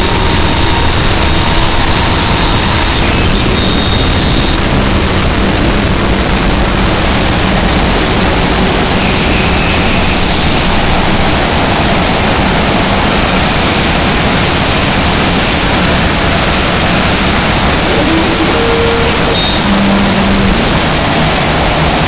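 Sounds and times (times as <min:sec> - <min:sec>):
harsh distorted static noise: 0:00.0 - 0:22.0.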